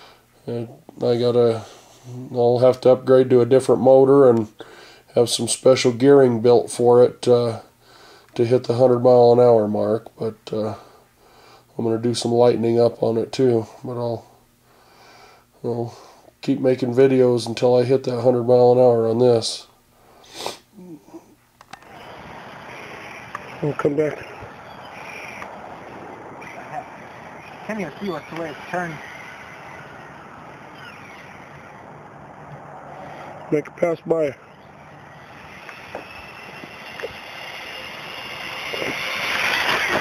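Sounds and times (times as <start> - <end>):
faint low murmur: 0.4 - 4.5
man sniffing: 1.6 - 2.4, 20.0 - 21.4
rc car motor whine: 21.7 - 40.0
small clicks: 23.3 - 23.5.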